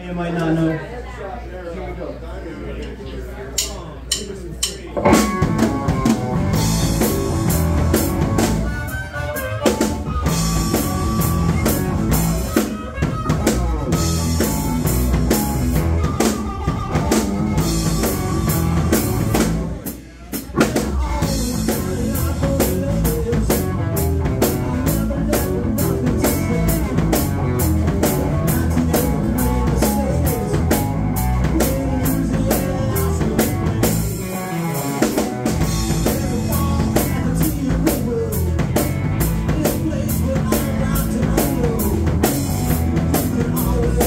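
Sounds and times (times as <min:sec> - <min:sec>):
drum kit: 0:03.6 - 0:44.0
electric guitars: 0:05.0 - 0:19.9, 0:20.5 - 0:44.0
bass guitar: 0:05.0 - 0:44.0
harmonica wailing: 0:05.8 - 0:19.4.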